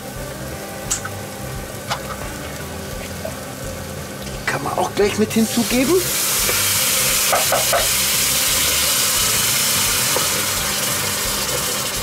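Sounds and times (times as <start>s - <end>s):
food sizzling in a pot: 0.0s - 12.0s.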